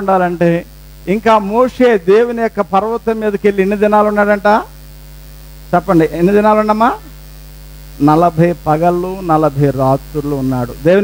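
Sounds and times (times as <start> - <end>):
man speaking: 0.0 - 4.8, 5.7 - 7.2, 8.0 - 11.0
electrical mains hum: 0.0 - 11.0.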